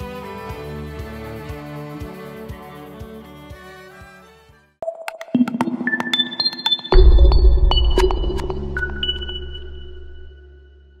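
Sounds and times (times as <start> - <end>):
deep bass hit: 7.0 - 10.4.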